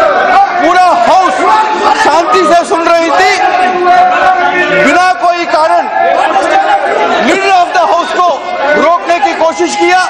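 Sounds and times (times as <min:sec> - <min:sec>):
voices talking over one another: 0:00.0 - 0:10.0.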